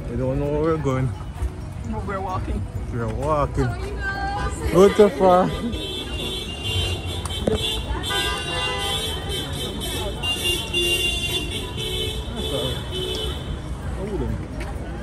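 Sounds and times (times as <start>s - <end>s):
faint voices: 0.0s - 15.0s
low rumble of vehicles: 0.0s - 15.0s.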